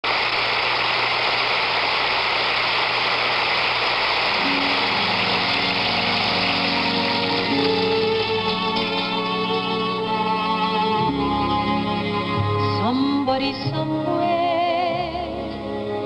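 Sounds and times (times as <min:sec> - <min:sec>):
tape hiss with low hum: 0:00.0 - 0:16.0
orchestra with held string notes: 0:04.3 - 0:16.0.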